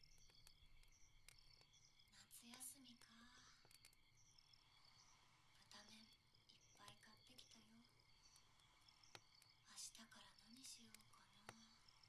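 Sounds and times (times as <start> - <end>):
faint clicks: 0.0 - 4.5, 5.5 - 12.0
soft breathy murmur: 2.1 - 3.8.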